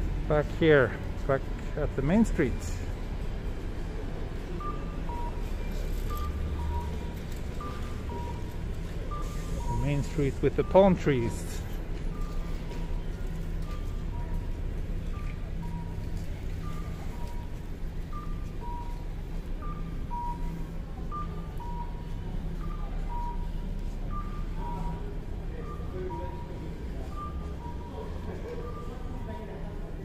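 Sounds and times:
street traffic rumble: 0.0 - 30.0.

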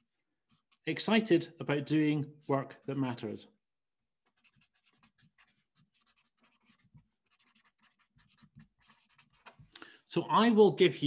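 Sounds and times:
marker writing on paper: 4.2 - 9.7.

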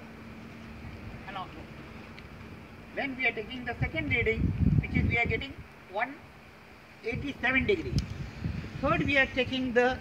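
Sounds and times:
wind rumble on microphone: 3.3 - 5.7, 7.0 - 10.0.

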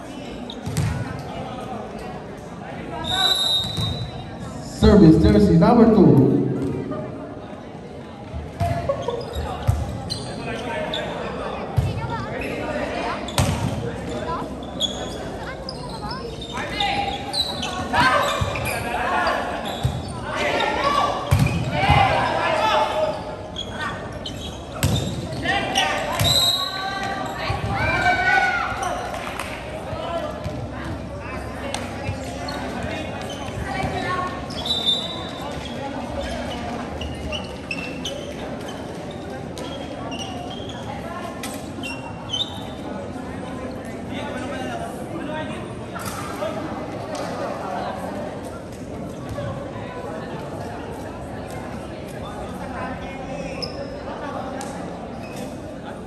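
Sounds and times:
volleyball slaps in reverberant hall: 0.6 - 1.5, 6.1 - 10.1, 13.3 - 14.0, 21.2 - 22.3, 24.7 - 34.5.

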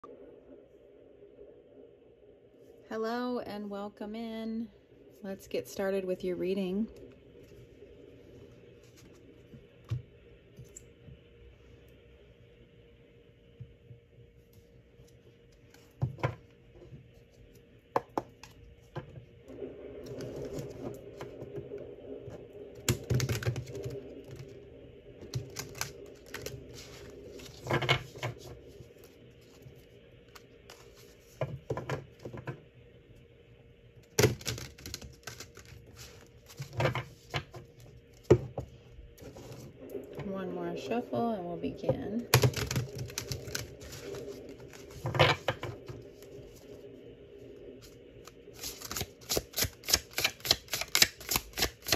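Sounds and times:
cards being shuffled: 30.3 - 31.3, 42.4 - 45.6, 48.2 - 51.9.

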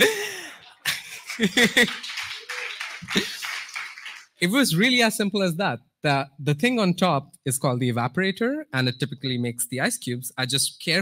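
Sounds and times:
man laughing: 0.0 - 2.0
audience laughing: 0.0 - 3.9
clapping: 0.0 - 4.4.

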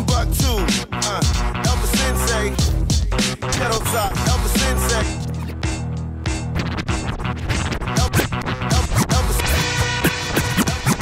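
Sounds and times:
turntable record scratching: 0.0 - 5.6, 6.3 - 11.0
hip hop drum beat: 0.0 - 11.0.

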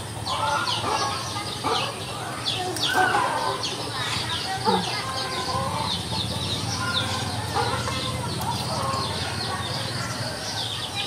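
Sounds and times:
bird clucking calls: 0.2 - 10.8.

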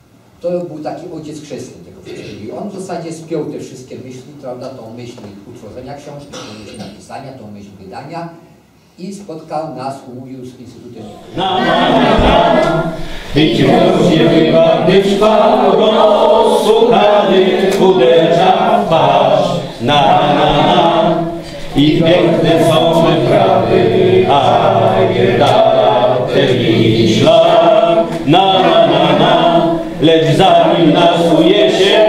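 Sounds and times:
choir singing: 11.2 - 32.0.

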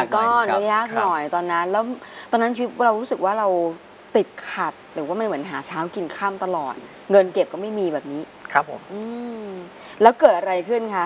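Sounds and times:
man speaking: 0.0 - 1.2, 8.5 - 8.7.

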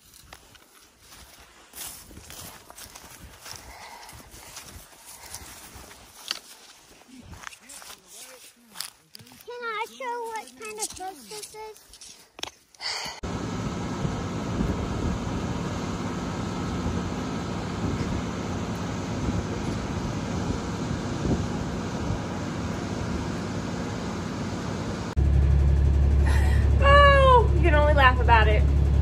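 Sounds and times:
feed mixer machine running: 13.2 - 26.8
low engine hum: 13.2 - 29.0.

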